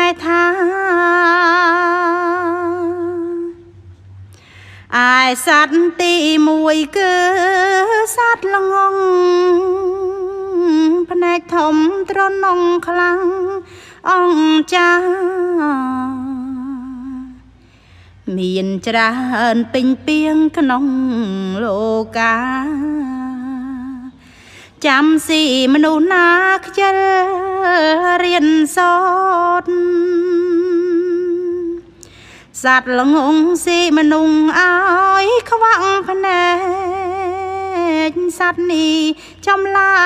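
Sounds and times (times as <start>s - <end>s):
person chanting unaccompanied: 0.0s - 3.7s, 4.9s - 17.5s, 18.2s - 24.2s, 24.8s - 31.9s, 32.5s - 40.0s.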